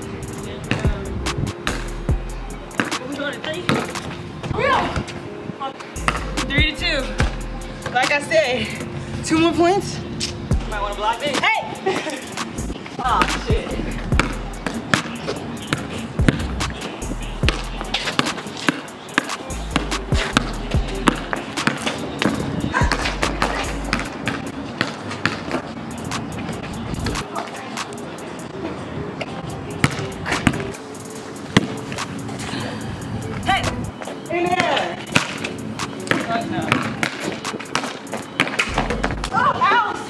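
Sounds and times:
background music with deep bass: 0.0 - 24.8, 25.6 - 39.6
basketball bouncing on concrete: 0.7 - 1.0, 2.7 - 4.2, 6.0 - 8.1, 13.0 - 16.6, 17.4 - 25.6, 29.8 - 30.7, 34.5 - 39.4.

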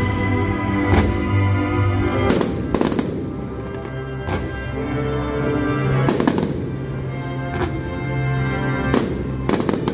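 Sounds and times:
orchestral music: 0.0 - 9.9
fireworks bangs and crackle: 0.8 - 1.3, 2.2 - 4.7, 6.0 - 7.9, 8.8 - 9.9.

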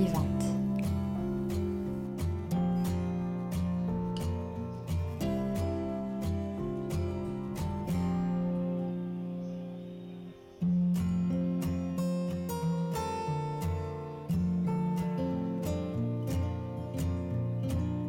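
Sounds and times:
acoustic guitar music: 0.0 - 18.0.

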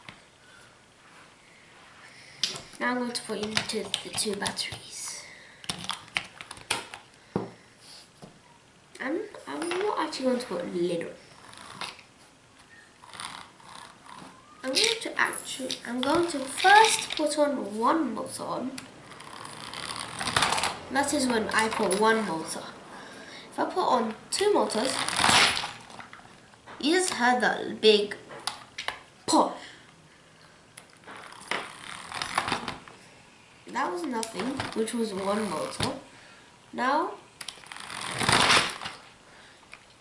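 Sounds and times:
toy car motor whirring: 11.3 - 12.1, 13.0 - 17.4, 19.0 - 22.0, 31.2 - 32.8, 34.4 - 35.9, 37.4 - 39.0.

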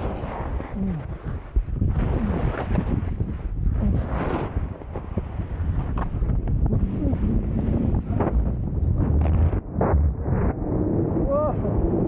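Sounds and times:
skis scraping through snow: 0.0 - 8.1
wind buffeting microphone: 0.0 - 12.0.

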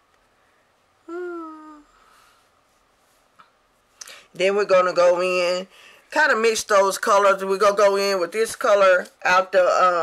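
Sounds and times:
woman humming: 1.0 - 2.1.

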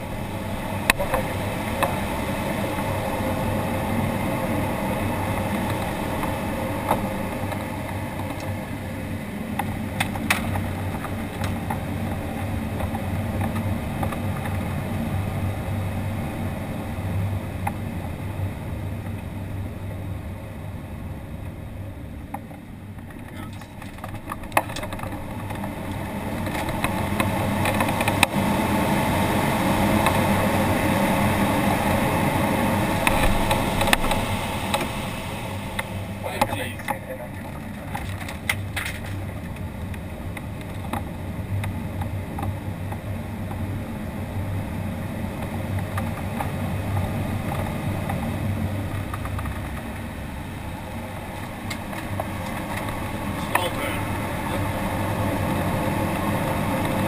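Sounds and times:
air rushing over glider canopy: 0.0 - 22.2, 22.9 - 57.0.

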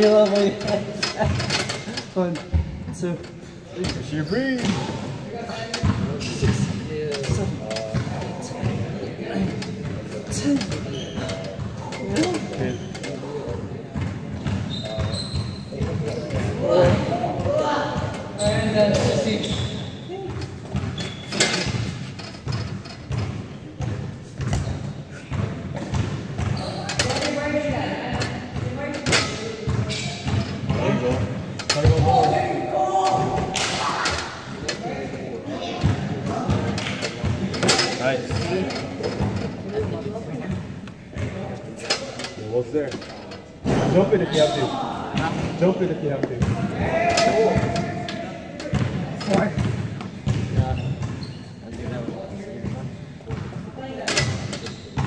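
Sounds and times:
indistinct voices in echoing hall: 0.0 - 55.0.

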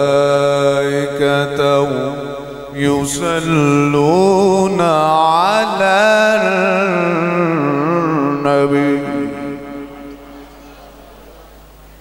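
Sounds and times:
man chanting: 0.0 - 11.5.

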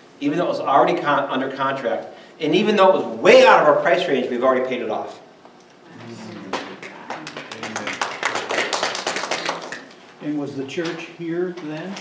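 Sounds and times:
voices: 5.9 - 8.0
people clapping: 6.2 - 10.0.

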